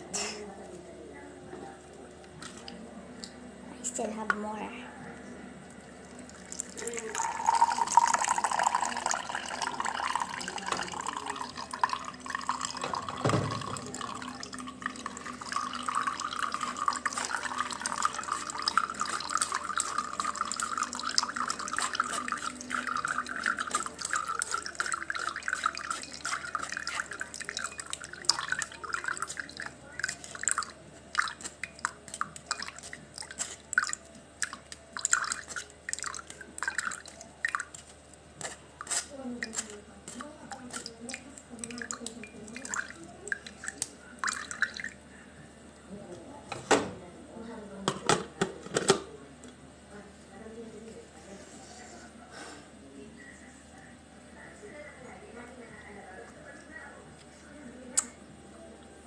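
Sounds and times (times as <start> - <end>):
liquid trickling into glass: 5.9 - 37.8, 40.5 - 45.0
drips falling into glass: 6.3 - 37.7.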